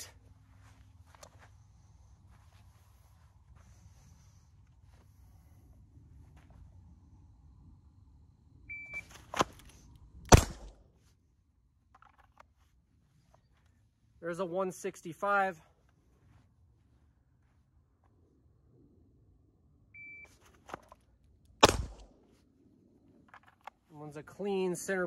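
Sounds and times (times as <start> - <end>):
low wind rumble: 0.0 - 11.9, 16.0 - 20.2, 21.1 - 24.4
revolver gunshot: 10.3 - 10.8, 21.6 - 22.2.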